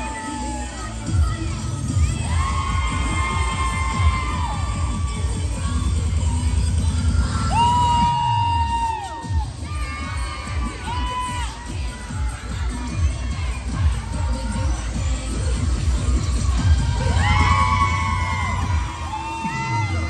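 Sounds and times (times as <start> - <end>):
cheerleading music with heavy bass: 0.0 - 20.0
crowd screaming and cheering: 0.0 - 20.0.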